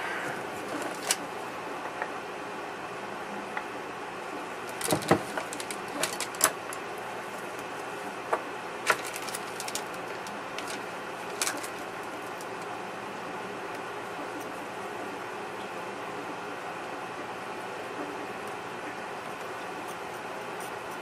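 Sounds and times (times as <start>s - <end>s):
steady background hum: 0.0s - 21.0s.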